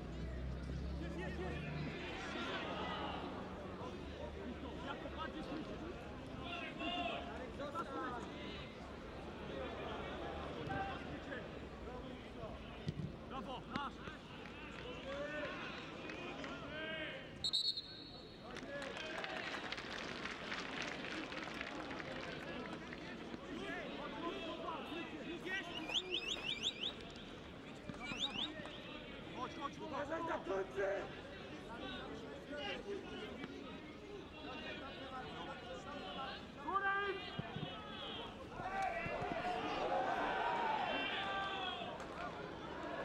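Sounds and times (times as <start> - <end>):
sparse crowd voices and shouts: 0.0 - 17.3, 22.3 - 43.0.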